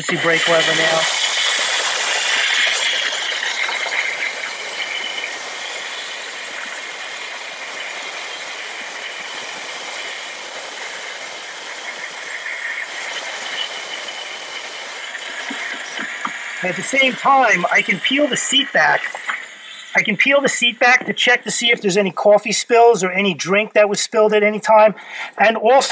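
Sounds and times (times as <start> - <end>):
steam jet hissing: 0.0 - 23.0.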